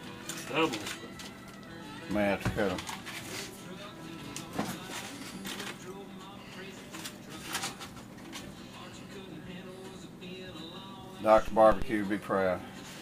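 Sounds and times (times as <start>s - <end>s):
room hum: 0.0s - 13.0s
aluminium foil crinkling: 0.2s - 1.6s, 4.3s - 5.9s, 6.6s - 8.5s.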